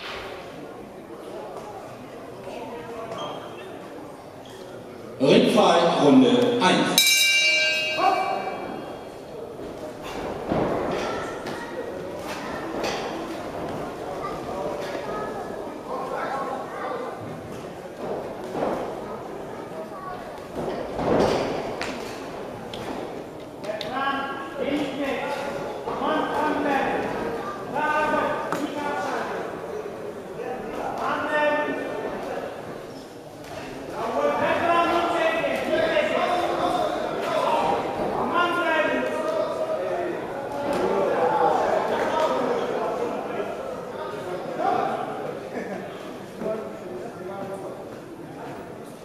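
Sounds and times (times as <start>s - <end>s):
voices shouting in echoing hall: 5.3s - 9.2s
boxing ring bell: 7.0s - 8.7s.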